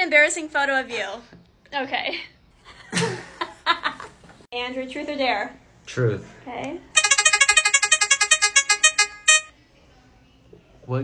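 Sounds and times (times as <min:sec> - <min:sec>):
short electronic beeps: 0:07.0 - 0:09.5.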